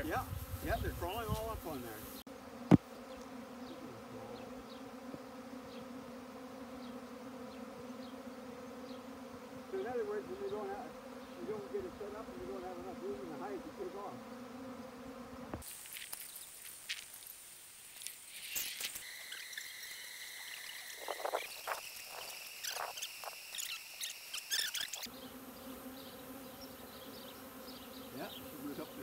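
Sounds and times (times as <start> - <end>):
honeybee swarm humming: 0.0 - 29.0
high steady insect tones: 14.7 - 29.0.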